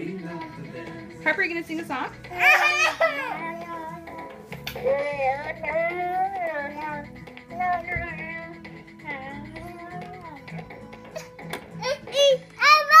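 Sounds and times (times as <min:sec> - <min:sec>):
toy keyboard tune: 0:00.0 - 0:12.4
toddler singing wordlessly: 0:02.3 - 0:10.5, 0:11.8 - 0:13.0.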